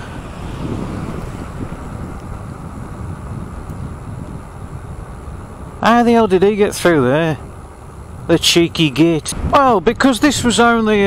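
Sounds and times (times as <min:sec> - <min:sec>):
tyre and road rumble: 0:00.0 - 0:11.0
wind rushing over microphone: 0:00.0 - 0:11.0.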